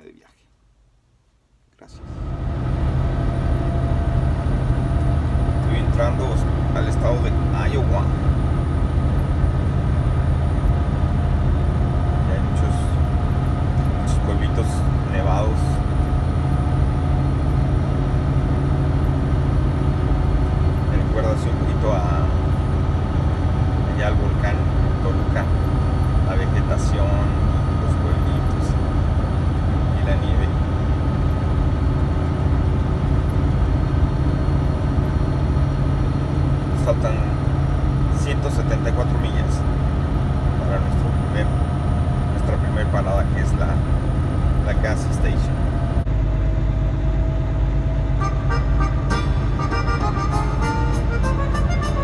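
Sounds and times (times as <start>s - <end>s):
road noise: 1.8s - 52.0s
truck engine drone: 1.8s - 52.0s.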